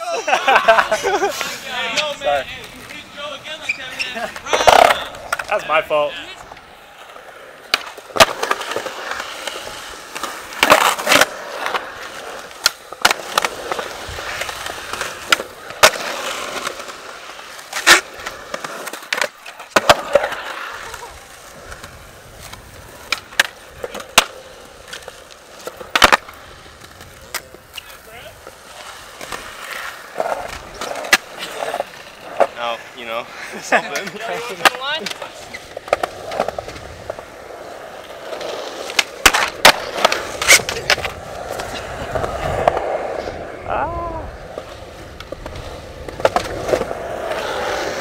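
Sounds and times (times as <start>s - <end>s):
skateboard wheels rolling on concrete: 0.0s - 48.0s
skateboard clacks: 0.5s - 48.0s.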